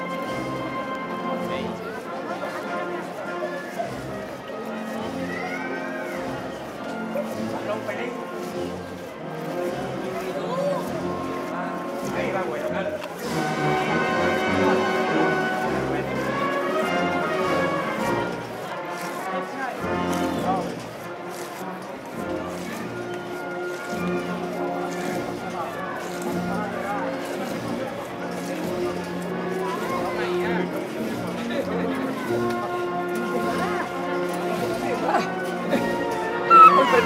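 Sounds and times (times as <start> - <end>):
marching band playing slow march: 0.0 - 37.0.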